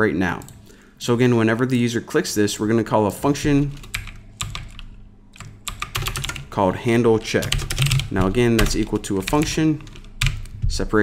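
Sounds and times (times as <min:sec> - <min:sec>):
keyboard keystrokes: 0:05.4 - 0:06.5, 0:07.4 - 0:10.6.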